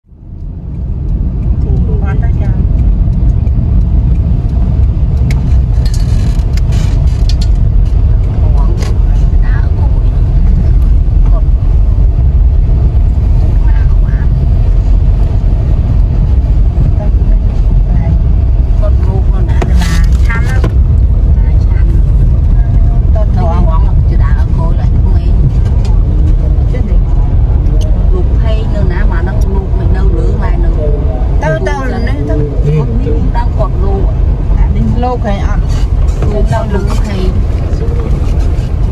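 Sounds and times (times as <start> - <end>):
road noise: 0.0 - 38.9
vehicle engine rumble: 0.0 - 38.9.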